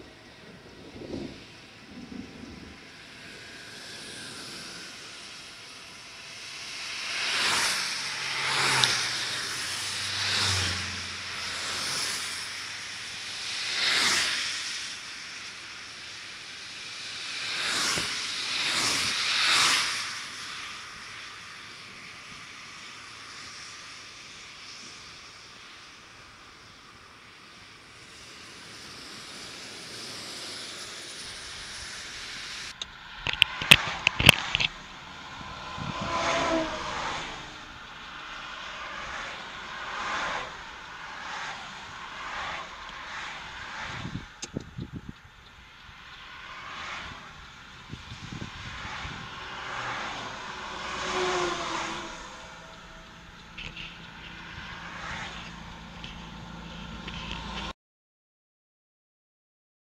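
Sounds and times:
highway vehicles passing: 0.0s - 57.7s
steady traffic rushing noise: 0.0s - 57.8s.

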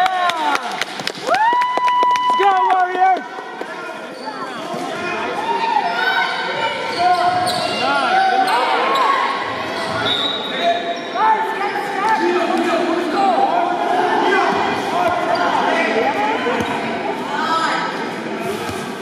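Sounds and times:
voices calling out echoing: 2.4s - 19.0s
sneakers squeaking on wood floor: 5.8s - 12.0s.

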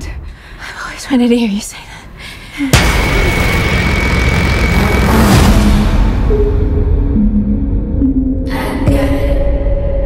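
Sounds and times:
thin high whine: 2.7s - 6.8s
sharp hit: 2.7s - 7.5s
loud rumbling drone: 2.7s - 9.2s.

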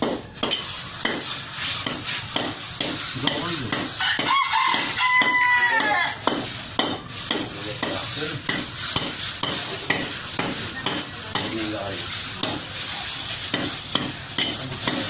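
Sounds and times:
trowel scraping wet concrete: 0.0s - 15.0s
rooster crowing: 4.0s - 6.2s.

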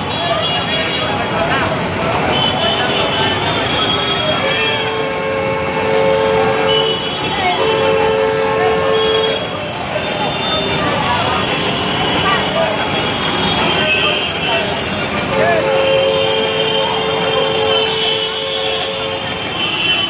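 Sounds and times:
people's voices: 0.0s - 20.0s
street traffic: 0.0s - 20.0s
long horn blasts: 3.9s - 9.5s.

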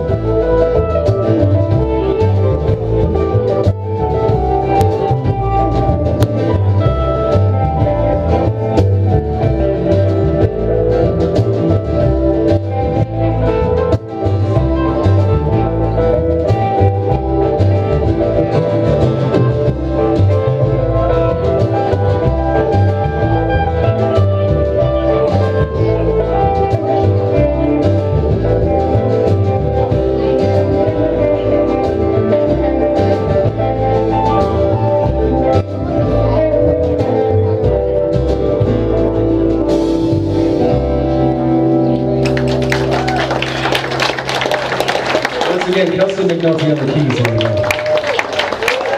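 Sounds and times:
acoustic guitar: 0.0s - 46.2s
drums: 0.0s - 48.9s
electric guitar: 0.0s - 48.9s
upright bass: 0.0s - 48.9s.

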